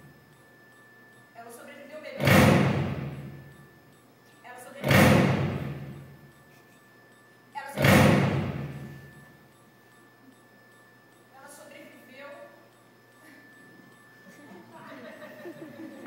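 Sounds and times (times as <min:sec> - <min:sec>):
heavy booming thuds: 0:02.2 - 0:03.5, 0:04.8 - 0:06.1, 0:07.8 - 0:09.1.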